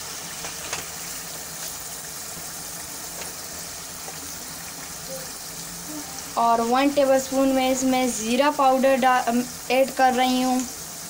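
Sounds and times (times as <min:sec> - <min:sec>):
curry sizzling in a metal pan: 0:00.0 - 0:11.0.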